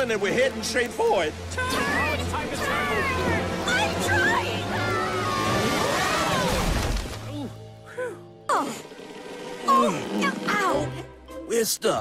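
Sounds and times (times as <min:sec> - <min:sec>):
boat rushing through water: 0:00.0 - 0:07.5.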